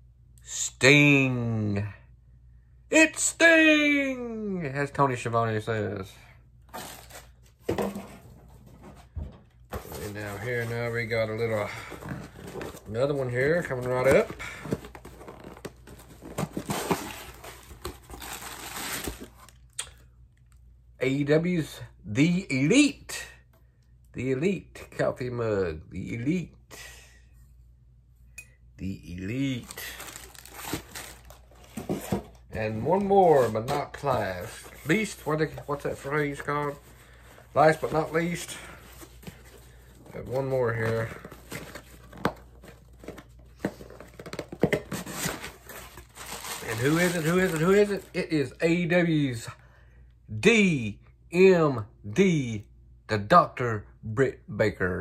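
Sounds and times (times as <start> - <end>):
packaging crinkling and tearing: 11.8 - 19.7, 29.5 - 32.2, 40.2 - 48.2.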